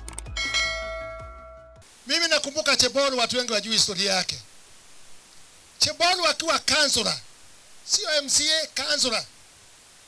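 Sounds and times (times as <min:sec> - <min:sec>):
notification bell ding: 0:00.4 - 0:01.8.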